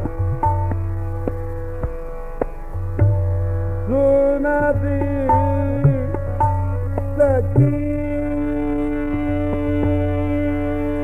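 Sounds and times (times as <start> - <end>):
low tabla strokes: 0.0 - 11.0
tanpura drone: 0.0 - 11.0
man singing classical vocals: 3.8 - 11.0.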